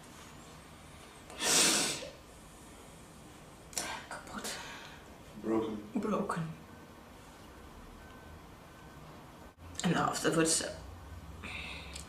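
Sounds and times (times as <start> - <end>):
sharp noisy breath: 1.3 - 2.2.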